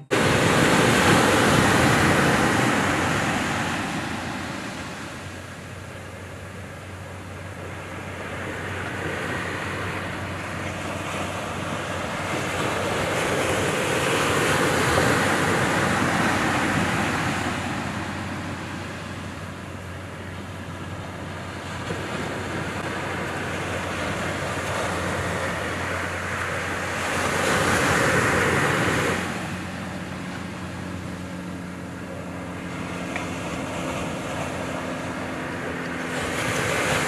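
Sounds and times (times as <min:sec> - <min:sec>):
ocean surf breaking: 0:00.0 - 0:37.0.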